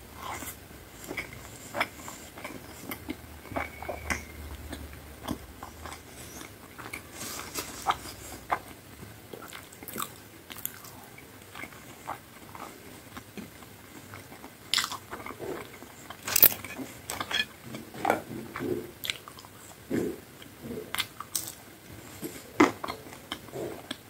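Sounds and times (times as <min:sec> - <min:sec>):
wet chewing: 0:00.2 - 0:24.0
crisp bites and chewing: 0:16.2 - 0:16.6
sharp food crunches: 0:16.2 - 0:16.6.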